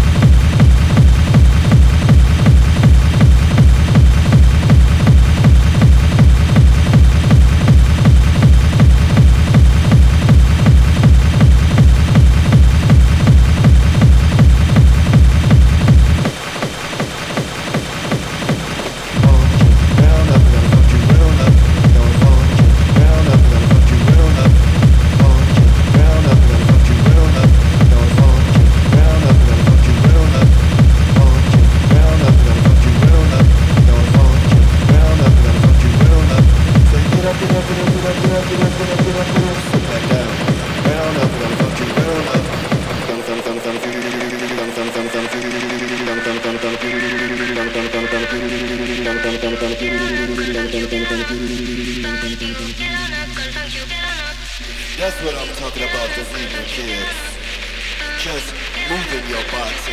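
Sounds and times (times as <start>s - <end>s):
electronic synth loop: 0.0s - 59.9s
fast techno kick drum: 0.0s - 59.9s.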